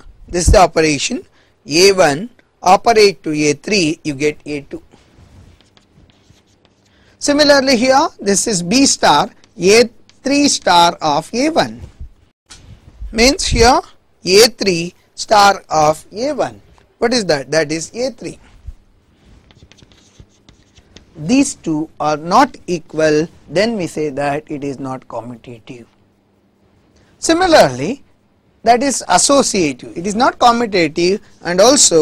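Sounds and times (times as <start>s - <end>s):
chalk tapping and scratching: 4.3s - 7.8s, 8.7s - 12.0s, 19.1s - 21.8s
pen writing scratches: 5.2s - 6.9s, 19.4s - 21.1s.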